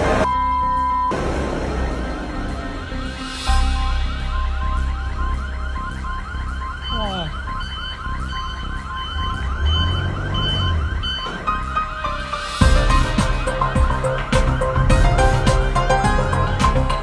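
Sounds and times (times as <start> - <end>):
music with deep bass: 0.0 - 17.0
electronic alarm warbling: 0.2 - 12.6.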